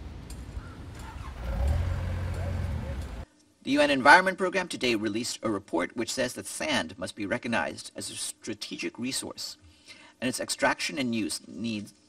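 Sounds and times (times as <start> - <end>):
engine rumbling: 0.0 - 3.2.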